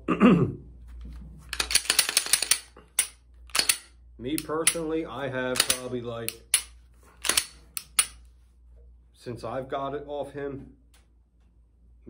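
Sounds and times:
pistol slide clicking: 1.6s - 4.9s, 5.6s - 8.2s.

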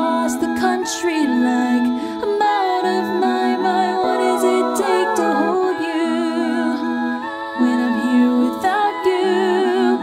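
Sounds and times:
layered a cappella female vocals: 0.0s - 10.0s.

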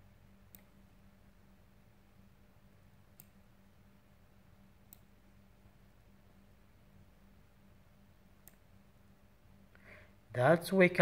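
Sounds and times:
faint low hum: 0.0s - 11.0s
computer mouse clicks: 0.4s - 0.8s, 3.1s - 3.4s, 4.8s - 5.1s, 8.4s - 8.7s.

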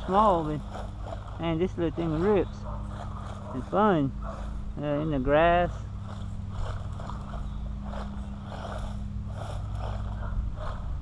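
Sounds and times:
steady low hum: 0.0s - 11.0s
toy truck motor and tyre noise: 0.0s - 11.0s.

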